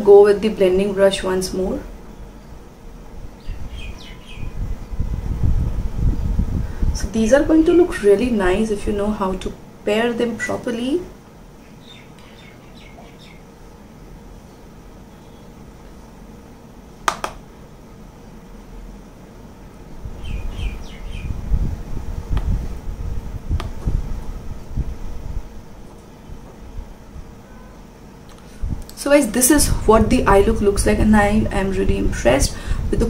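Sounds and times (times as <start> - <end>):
faint bird chirps: 3.4 - 5.0, 11.6 - 13.5, 14.5 - 15.6, 20.2 - 21.4
sharp click: 17.1 - 17.4.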